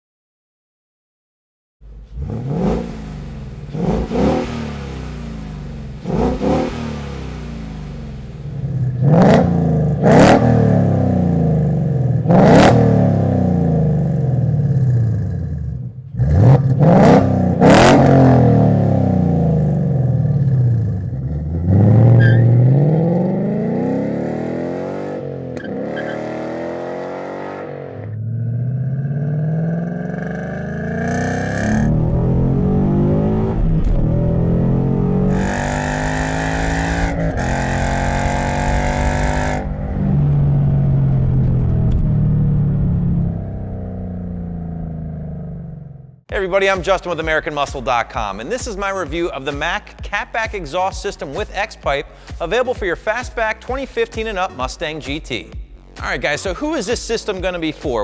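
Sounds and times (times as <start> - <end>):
car accelerating: 1.8 - 46.2
car engine revving: 1.8 - 46.3.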